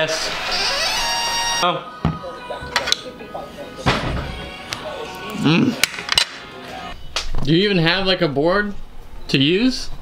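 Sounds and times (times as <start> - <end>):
background music: 0.0 - 7.1.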